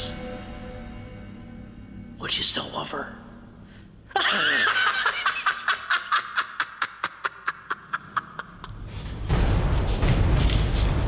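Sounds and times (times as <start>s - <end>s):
man laughing hard: 4.1s - 8.8s.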